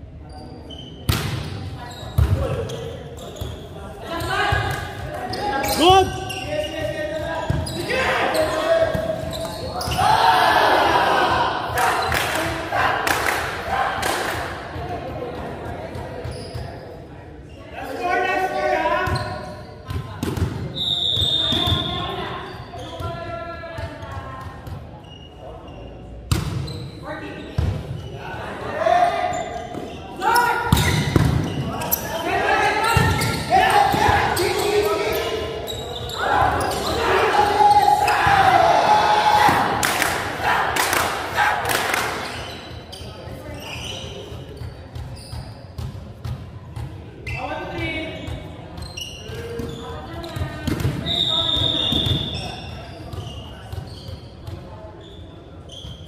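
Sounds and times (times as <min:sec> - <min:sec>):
volleyball hits and bounces: 0:01.1 - 0:02.6, 0:19.9 - 0:20.7, 0:30.7 - 0:31.7, 0:50.3 - 0:51.1
players shouting: 0:09.8 - 0:14.4, 0:32.0 - 0:42.3.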